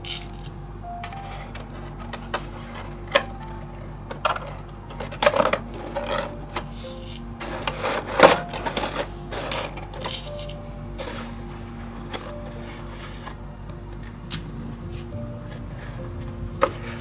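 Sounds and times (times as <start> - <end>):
cardstock rustling: 0.0 - 17.0
quiet background music: 0.0 - 17.0.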